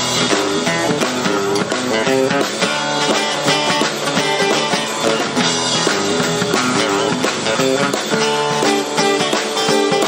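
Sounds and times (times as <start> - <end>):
drum kit: 0.0 - 10.0
guitars picking and strumming: 0.0 - 10.0.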